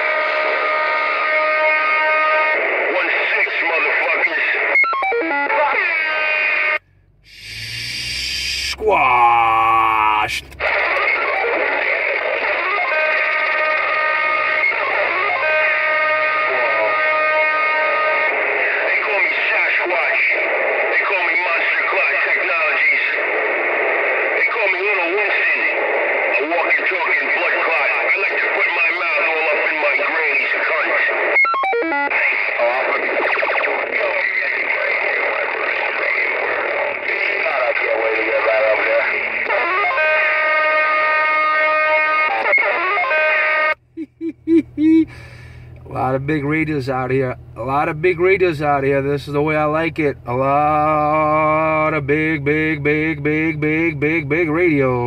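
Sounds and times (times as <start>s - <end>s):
distorted radio music with guitar: 0.0s - 44.3s
garbled overlapping radio voices: 0.0s - 55.0s
steady held tones: 6.7s - 10.9s.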